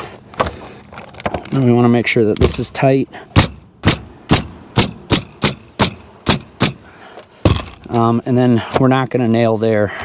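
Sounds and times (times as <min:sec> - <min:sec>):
pneumatic nail gun firing: 0:03.4 - 0:06.9.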